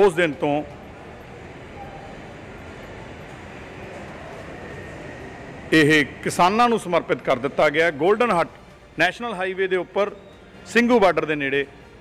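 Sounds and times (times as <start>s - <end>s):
indoor rumble and hiss: 0.0s - 12.0s.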